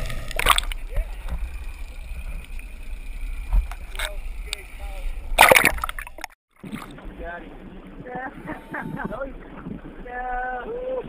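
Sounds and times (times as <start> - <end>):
loud water splash: 0.0 - 0.9, 5.2 - 7.0
seawater sloshing and gurgling: 0.0 - 10.6
steady low rumble: 0.0 - 11.0.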